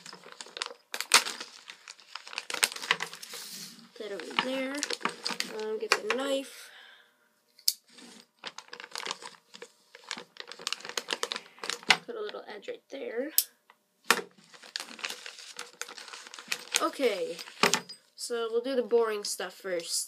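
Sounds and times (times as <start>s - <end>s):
plastic bag crinkling: 0.0s - 6.4s, 7.9s - 12.4s, 14.1s - 17.8s.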